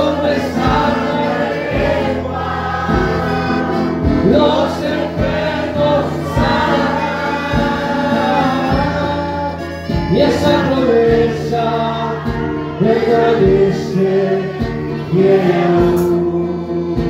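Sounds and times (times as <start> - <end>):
amplified instruments: 0.0 - 17.0
congregation singing a hymn: 0.0 - 17.0
steady low beat: 0.0 - 17.0.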